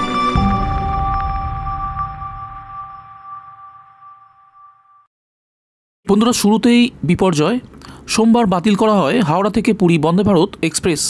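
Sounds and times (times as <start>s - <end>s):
two-note synth tone: 0.0s - 5.0s.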